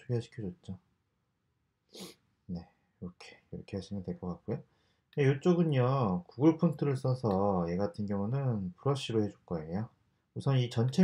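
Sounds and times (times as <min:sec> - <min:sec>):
man's sharp breath: 0:01.9 - 0:02.2.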